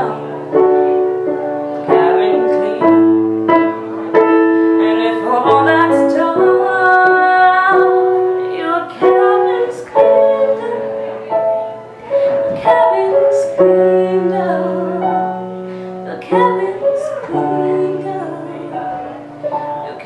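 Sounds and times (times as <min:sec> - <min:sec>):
piano chords: 0:00.0 - 0:20.0.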